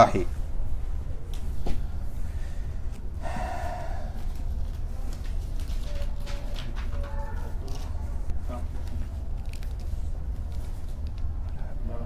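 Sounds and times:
steady low hum: 0.0 - 12.0
man gasping: 3.2 - 4.4.

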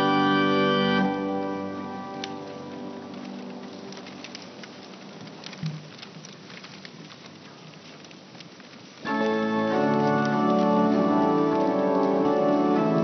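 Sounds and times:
pipe organ chord reverberating: 0.0 - 3.2, 9.1 - 13.0
shoes clicking on marble floor: 2.2 - 13.0.

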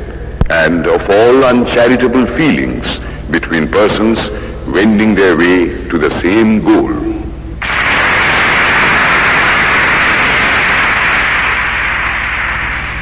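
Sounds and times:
large audience applauding: 7.6 - 13.0.

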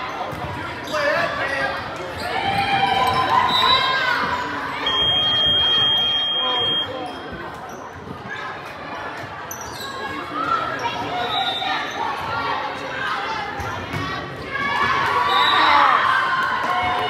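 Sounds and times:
crowd talking and shouting: 0.0 - 17.0
referee's whistle: 3.4 - 4.0, 4.8 - 7.2, 11.2 - 12.0, 15.2 - 15.9.

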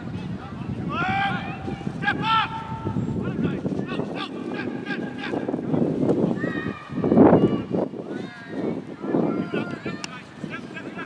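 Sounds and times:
distant players shouting: 0.9 - 11.0.

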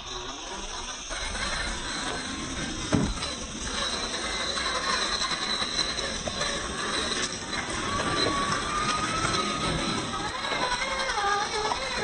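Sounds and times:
toy truck electric motor whining: 0.0 - 12.0.

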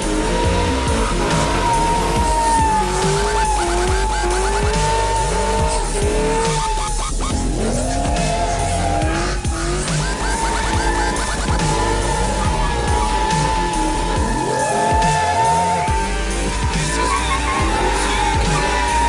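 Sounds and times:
car engine revving: 0.0 - 19.0
music playing: 0.0 - 19.0
tyres squealing: 0.0 - 19.0.

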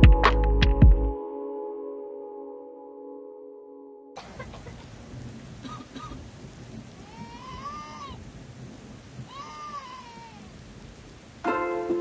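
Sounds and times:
rain: 4.2 - 12.0
cat meowing: 7.0 - 8.2, 9.2 - 10.6.

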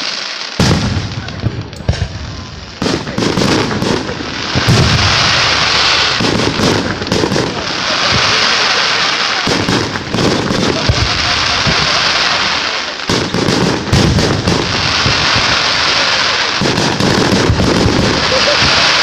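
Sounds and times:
deep fireworks booms: 0.0 - 19.0
fireworks crackling: 0.0 - 19.0.

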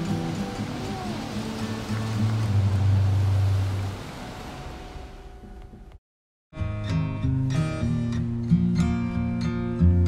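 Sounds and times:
surf breaking on rocks: 0.0 - 5.0.

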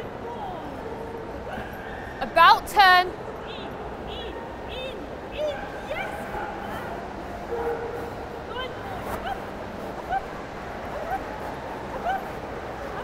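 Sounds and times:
murmur of indoor hall: 0.0 - 13.0.

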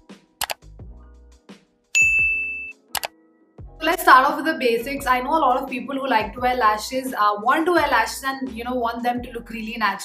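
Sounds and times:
background music: 0.0 - 10.0
sharp clicks: 0.4 - 0.6, 2.9 - 3.1
bright ding: 2.0 - 2.8.

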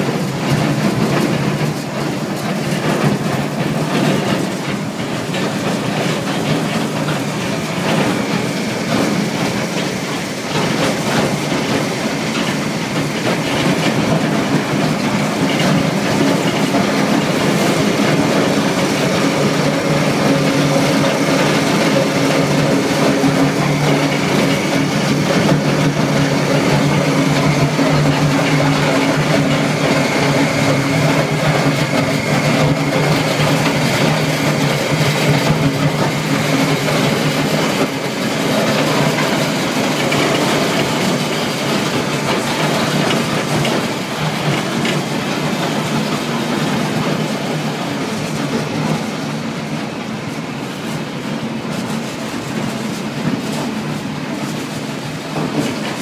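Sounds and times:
shredder machine drone: 0.0 - 56.0.

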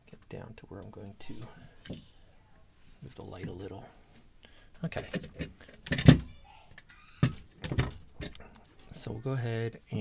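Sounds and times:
metal lock clicks and knocks: 5.0 - 6.2.

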